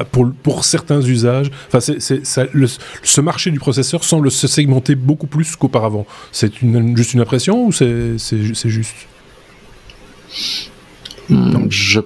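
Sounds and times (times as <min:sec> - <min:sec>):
breath hiss: 0:10.3 - 0:10.8.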